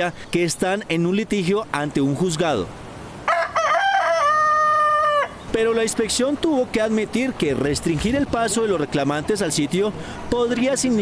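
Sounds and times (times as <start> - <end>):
rooster crowing: 3.2 - 5.4.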